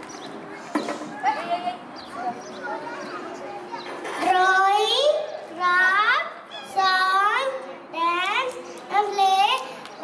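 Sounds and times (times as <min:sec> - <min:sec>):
audience chatter: 0:00.0 - 0:05.6.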